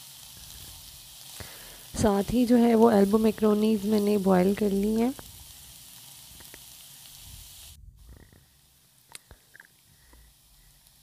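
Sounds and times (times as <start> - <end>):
vegetables sizzling in hot oil: 0.0 - 11.0.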